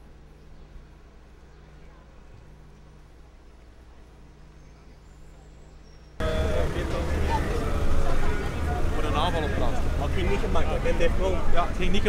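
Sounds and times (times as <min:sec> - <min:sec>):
car engine rumbling: 0:06.2 - 0:11.9
people's voices: 0:06.2 - 0:12.0.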